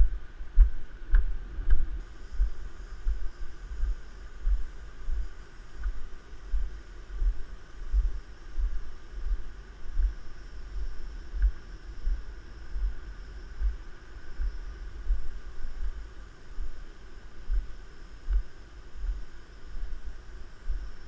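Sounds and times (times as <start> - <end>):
footsteps on wooden boardwalk: 0.0 - 9.4, 10.8 - 12.2, 15.1 - 16.0
faint steady hiss: 0.0 - 21.0.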